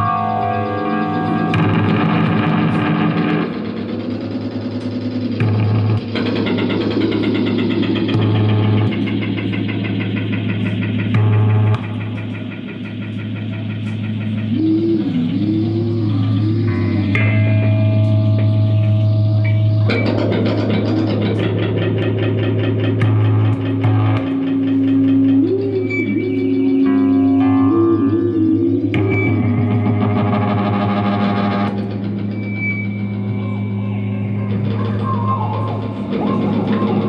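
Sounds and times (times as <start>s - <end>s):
thin high whine: 0.0s - 20.7s, 22.4s - 37.0s
electric guitars with effects: 0.0s - 37.0s
high sustained guitar notes: 0.0s - 37.0s
low guitar drone: 0.0s - 37.0s
wavering sliding guitar tone: 0.0s - 37.0s.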